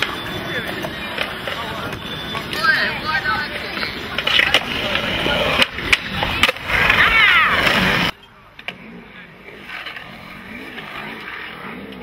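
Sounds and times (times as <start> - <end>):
skateboard clacks: 0.0 - 8.8
skateboard wheels rolling on concrete: 0.0 - 12.0.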